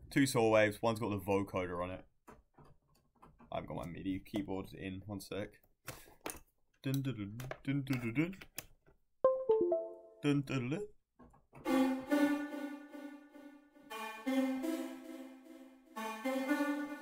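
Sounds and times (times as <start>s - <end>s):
bright buzzy synth chord: 9.3s - 10.2s, 11.7s - 17.0s.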